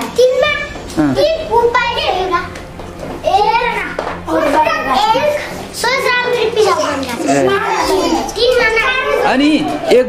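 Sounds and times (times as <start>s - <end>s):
young children talking: 0.0s - 10.0s.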